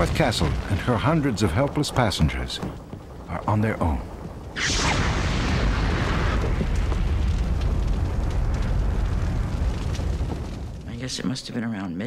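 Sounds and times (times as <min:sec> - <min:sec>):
rushing burst of flame: 0:00.0 - 0:10.9
low rumbling of fire burning: 0:00.0 - 0:11.7.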